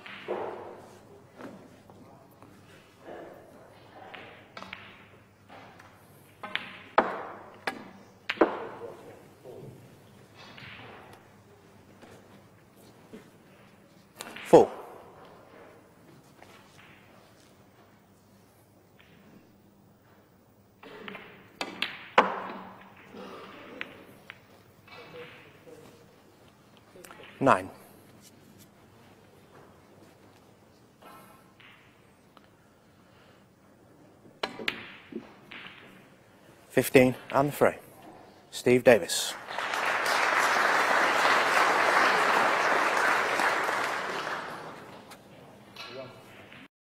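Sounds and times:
snooker balls clacking: 0.0s - 2.6s, 4.1s - 9.2s, 20.9s - 25.7s, 34.4s - 36.1s
snooker balls clicking together: 4.1s - 8.8s
cue tip striking ball: 6.4s - 8.9s.

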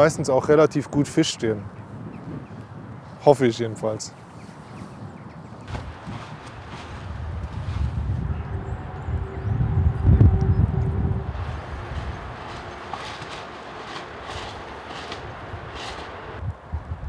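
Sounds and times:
steady outdoor hiss: 0.0s - 9.2s, 11.2s - 17.0s
strong wind buffeting microphone: 1.0s - 17.0s.

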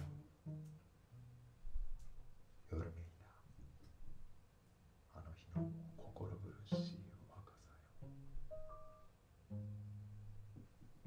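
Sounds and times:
plucked string note: 0.0s - 1.3s, 9.5s - 10.6s.

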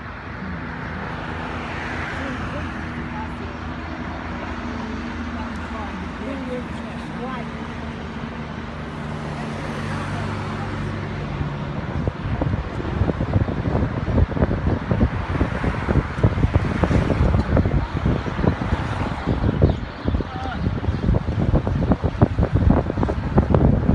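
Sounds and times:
car engine hum: 0.0s - 23.9s
road noise: 0.0s - 23.9s
wind buffeting microphone: 0.0s - 23.9s.

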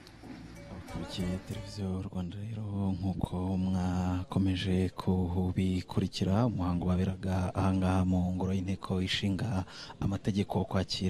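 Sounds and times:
man chanting: 0.9s - 11.0s.

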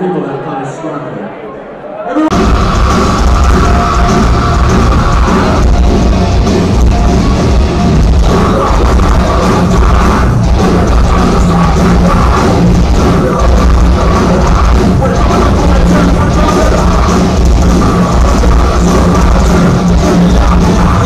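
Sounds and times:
live heavy metal band: 2.2s - 21.0s.

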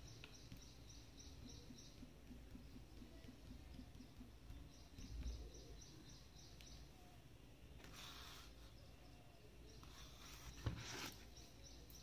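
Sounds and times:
faint high bird chirps: 0.0s - 7.2s, 7.8s - 12.0s.

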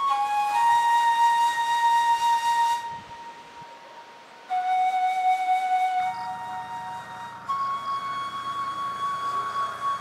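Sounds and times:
flute holding a long note: 0.0s - 10.0s.

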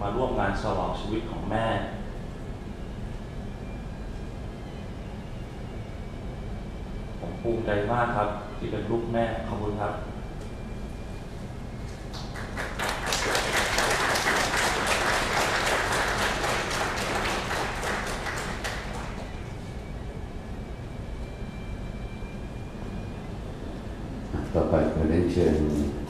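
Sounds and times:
audience applauding: 12.1s - 19.5s.

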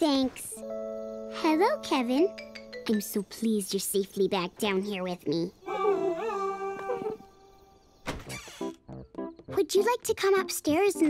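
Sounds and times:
soft background music: 0.0s - 3.4s, 8.6s - 11.0s.

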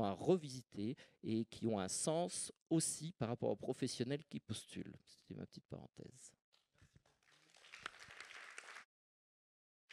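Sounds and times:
audience applauding: 7.3s - 8.9s.

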